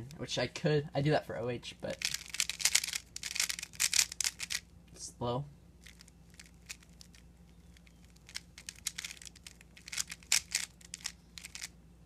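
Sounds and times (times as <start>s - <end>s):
puzzle cube clicking and rattling: 1.9s - 4.7s, 5.8s - 11.7s.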